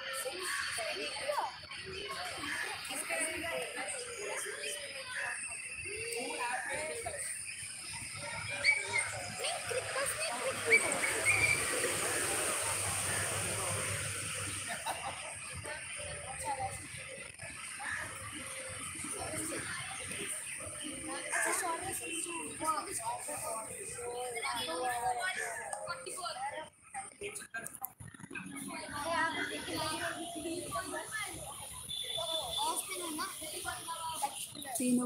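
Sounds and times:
people talking and calling out: 0.0 - 35.0.

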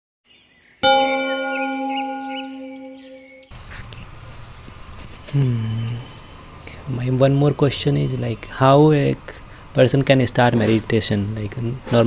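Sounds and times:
birdsong chirping: 0.3 - 3.5
struck bell ringing: 0.8 - 3.5.

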